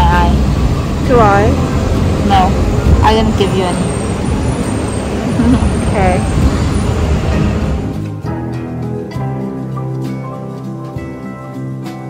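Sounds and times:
city street traffic rumble: 0.0 - 12.0
woman voice sounds: 5.4 - 6.3.

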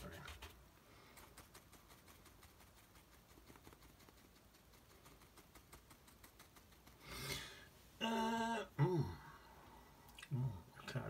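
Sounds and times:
brush dabbing on paper: 0.0 - 7.3.

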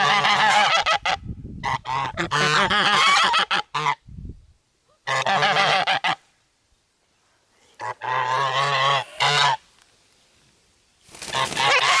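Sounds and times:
geese honking: 0.0 - 4.0, 5.0 - 6.3, 7.8 - 9.6, 11.3 - 12.0.

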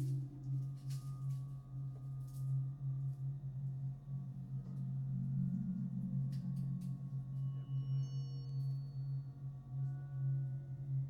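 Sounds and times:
low electronic drone: 3.3 - 10.8.

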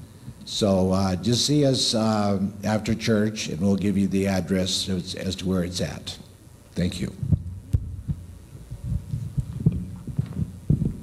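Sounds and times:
microphone handling thumps: 7.2 - 11.0.

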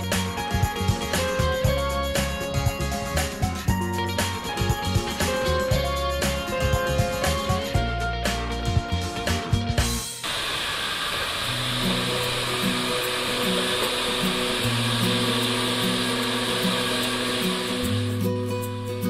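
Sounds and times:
background music: 0.0 - 10.2, 11.6 - 19.0
hair dryer blowing: 10.0 - 18.3.

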